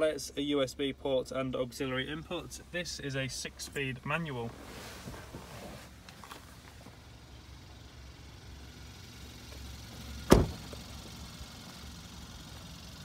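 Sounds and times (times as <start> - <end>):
car door shutting thud: 10.2 - 10.8.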